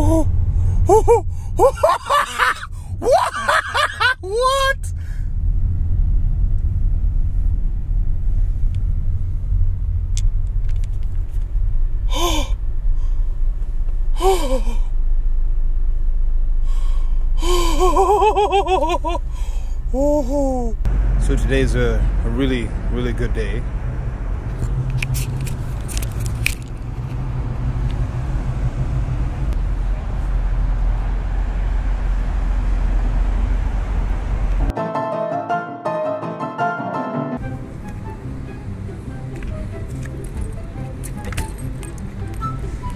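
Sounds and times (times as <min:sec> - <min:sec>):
car cabin rumble: 0:00.0 - 0:31.9
low hum: 0:00.0 - 0:34.8.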